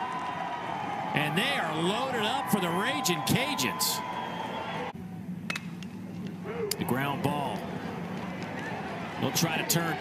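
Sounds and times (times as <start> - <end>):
ballpark crowd ambience: 0.0 - 10.0.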